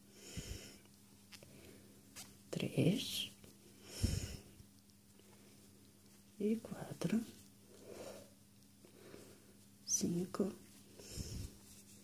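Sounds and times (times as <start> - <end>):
soft breath: 0.0 - 2.1, 3.6 - 5.8, 7.6 - 9.7, 10.7 - 12.0
faint low hum: 0.0 - 12.0
woman speaking: 2.5 - 3.4, 6.4 - 7.4, 9.8 - 10.6.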